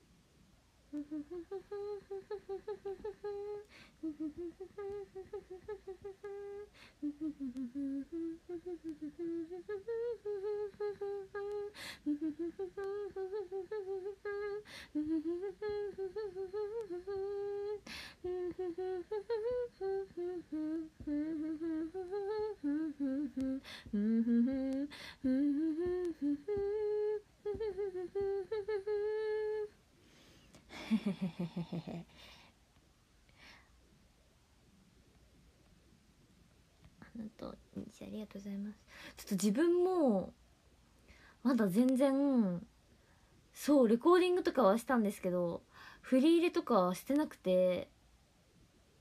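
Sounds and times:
woman humming softly: 0.9 - 29.8, 30.5 - 32.5, 36.9 - 40.3.

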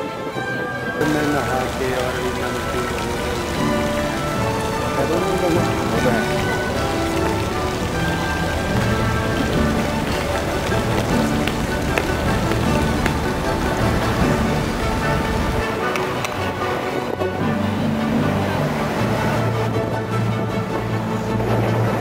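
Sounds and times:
background music with held tones: 0.0 - 22.0
fountain water splashing: 0.0 - 22.0.

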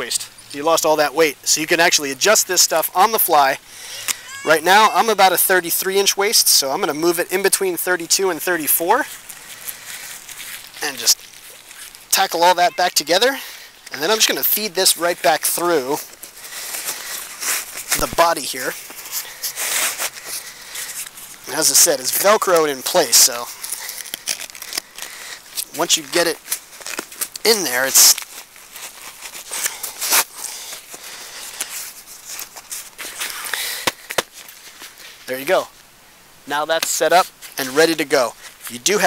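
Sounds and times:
nylon fabric rustling and scraping: 8.9 - 12.3, 14.1 - 35.3
fabric scrape: 19.0 - 20.2.

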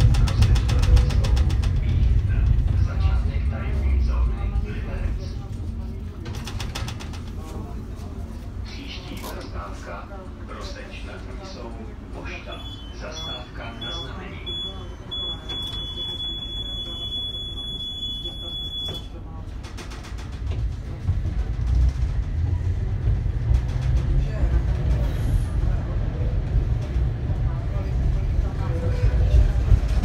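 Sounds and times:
tram motors and wheels rumbling: 0.0 - 30.0
tram door warning beep: 12.4 - 19.2.

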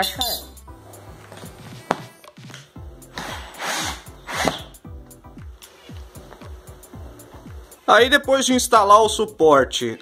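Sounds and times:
background music: 0.0 - 10.0
cordless drill screwing: 3.2 - 4.7.

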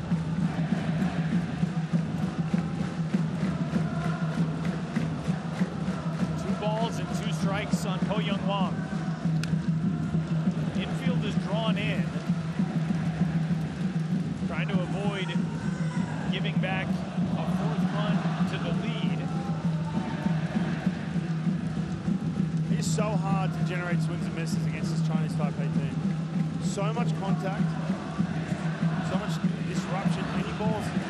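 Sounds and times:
crowd chanting: 0.0 - 22.3, 26.7 - 31.0
stadium crowd din: 0.0 - 31.0
people shouting: 14.5 - 21.2, 27.2 - 31.0.

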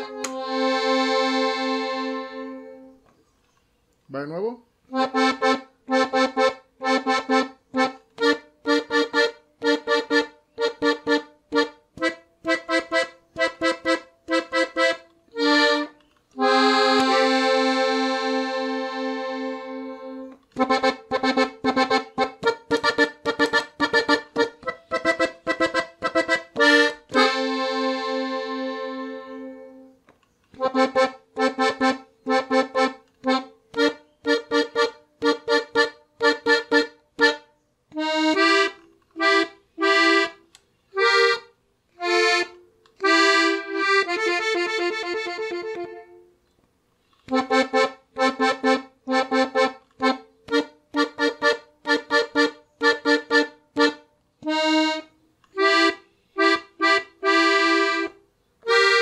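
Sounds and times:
piano accordion melody: 0.0 - 3.0, 4.9 - 46.4, 47.2 - 59.0.

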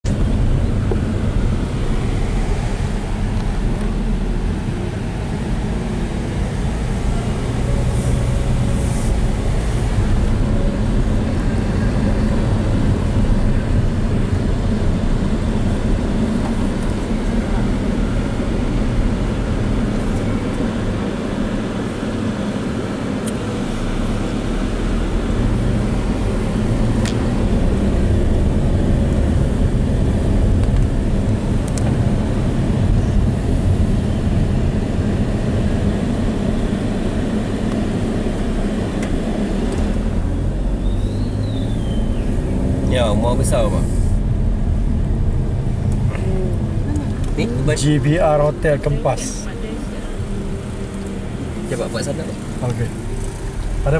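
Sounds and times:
car engine and tyre rumble: 0.0 - 53.9.

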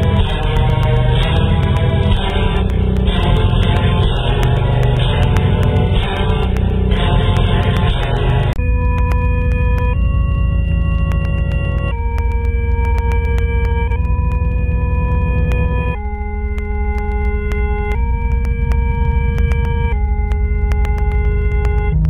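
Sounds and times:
deep rumble: 0.0 - 22.0
faint clicks: 0.0 - 22.0
synthetic electronic drone: 0.0 - 22.0.

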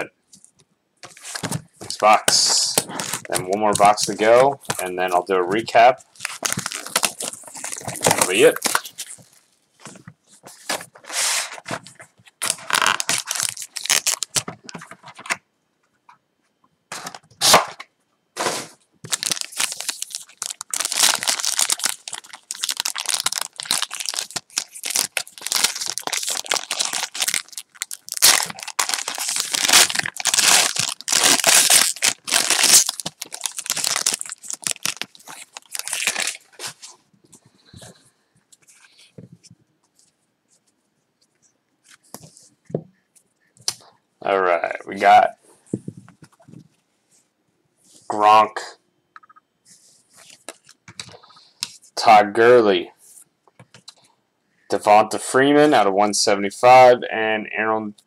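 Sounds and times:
foil crinkling: 1.3 - 5.0, 6.0 - 9.5, 12.4 - 14.5, 19.0 - 36.8
packaging tearing: 6.1 - 9.4, 12.4 - 14.5, 19.1 - 36.6.

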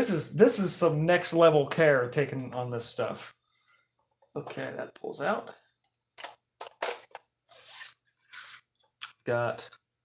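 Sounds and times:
paper card scraping out of box: 7.5 - 8.7.

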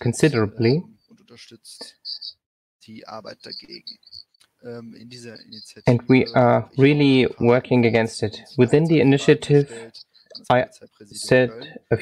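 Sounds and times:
man talking: 0.0 - 12.0
faint high-pitched chirp: 0.3 - 6.8
louder voice speaking: 4.7 - 12.0.

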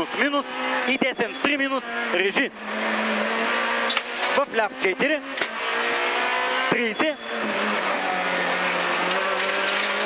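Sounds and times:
rally car engine revving high: 0.0 - 10.0
tyre and road noise: 0.0 - 10.0.

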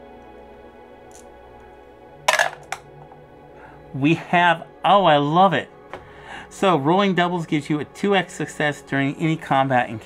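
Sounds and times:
soft background music: 0.0 - 10.0
dice clattering in a tray: 2.3 - 2.8.

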